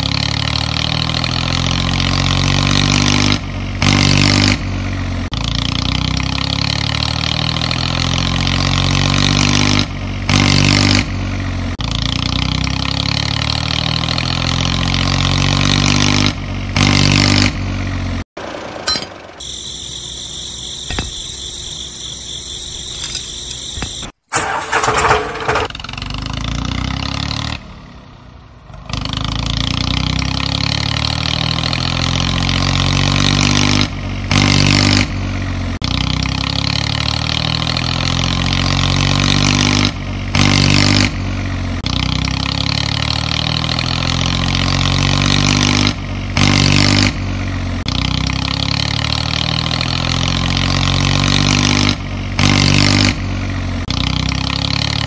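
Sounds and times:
engine rev: 0.0 - 18.8, 19.4 - 55.0
tractor engine running: 0.0 - 55.0.

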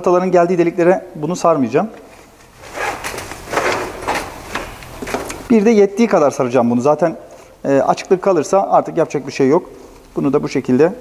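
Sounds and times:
heat wrap rustling and scraping: 2.0 - 5.5.

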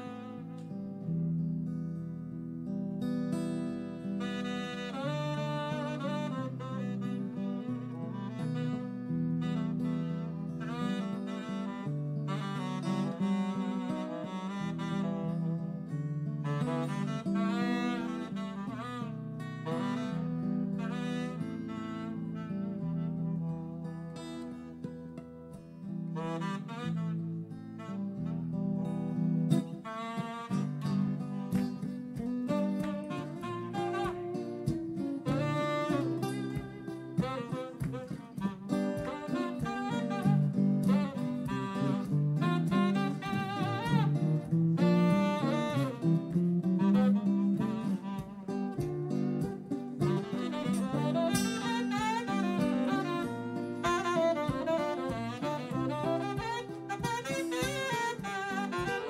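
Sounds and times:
saxophone playing jazz: 0.0 - 2.4, 3.0 - 59.0
guitar chords: 0.0 - 59.0.

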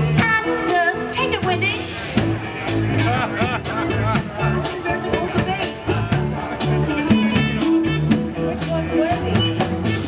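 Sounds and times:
rock band music: 0.0 - 10.0.

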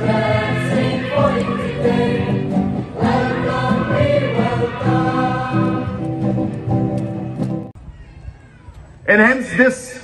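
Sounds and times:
boys' choir singing: 0.0 - 6.3.

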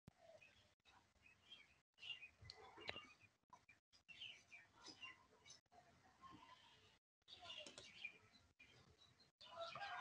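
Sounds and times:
faint bird chirps: 0.2 - 10.0.

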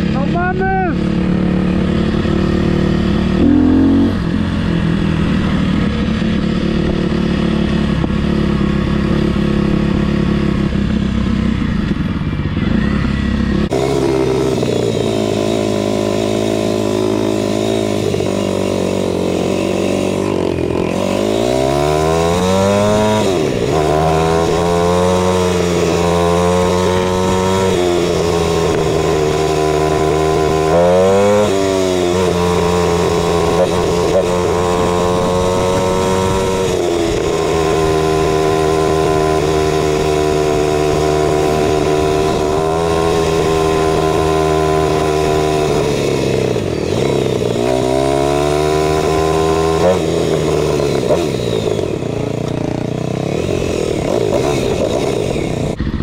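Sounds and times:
motorcycle engine revving: 0.0 - 56.0.

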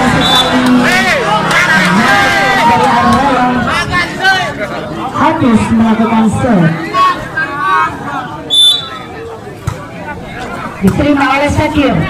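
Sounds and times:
crowd chatter: 0.0 - 12.0
referee's whistle blast: 0.1 - 0.6, 8.5 - 9.1.

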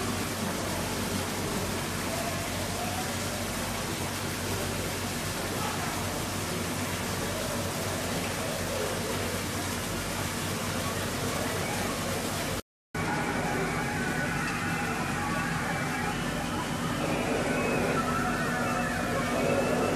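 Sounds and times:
faint distant voices: 0.0 - 19.9
steady rushing background noise: 0.0 - 19.9.

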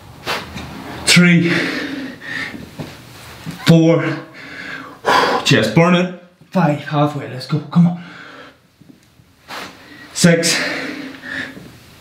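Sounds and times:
man breathing heavily: 1.3 - 2.9, 4.2 - 5.5, 8.0 - 8.6, 9.5 - 11.8.

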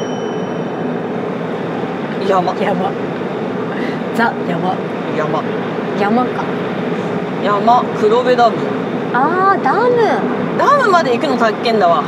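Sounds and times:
faint high chime tone: 0.0 - 1.0
car road and engine noise: 0.0 - 12.0.

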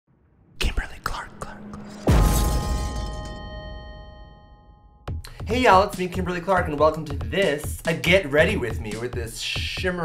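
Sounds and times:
person whispering: 0.6 - 1.9.

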